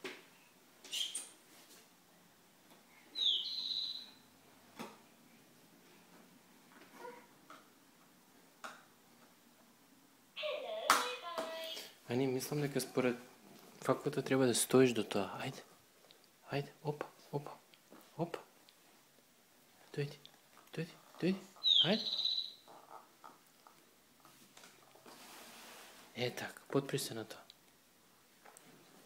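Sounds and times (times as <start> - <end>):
electronic toy trilling chirp: 3.2 - 4.1, 21.6 - 22.6.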